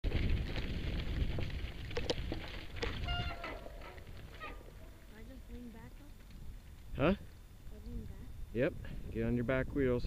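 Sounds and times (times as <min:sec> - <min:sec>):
bike rattles and clicks: 0:00.0 - 0:07.4
wind and tyres rumbling: 0:00.0 - 0:10.0.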